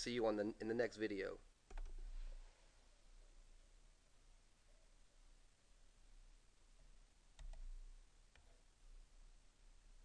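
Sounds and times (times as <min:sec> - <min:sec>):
computer mouse clicks: 0:01.7 - 0:02.0, 0:07.4 - 0:07.7.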